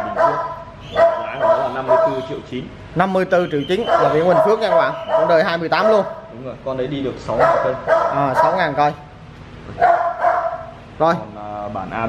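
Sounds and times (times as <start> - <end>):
dog howling: 0.0 - 2.3, 3.6 - 6.4.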